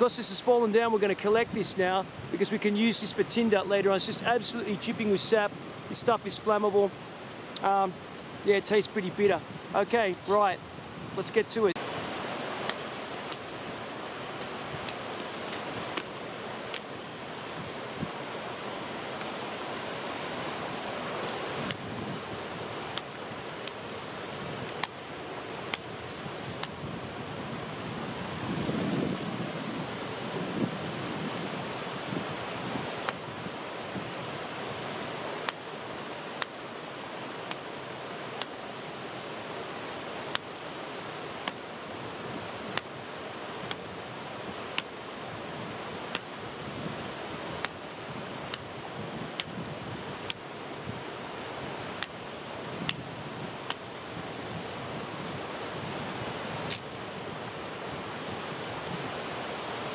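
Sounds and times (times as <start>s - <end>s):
rushing wind: 0.0s - 59.9s.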